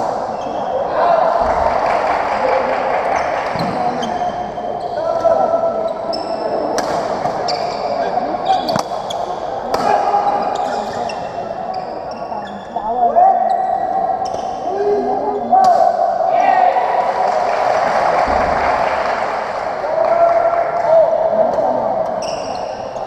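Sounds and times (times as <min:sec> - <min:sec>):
spectators chattering: 0:00.0 - 0:23.0
shoes squeaking on court floor: 0:07.3 - 0:09.3, 0:10.3 - 0:12.8, 0:22.1 - 0:23.0.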